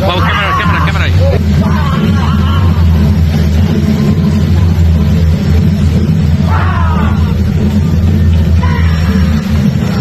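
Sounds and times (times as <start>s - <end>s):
loud low rumble: 0.0s - 10.0s.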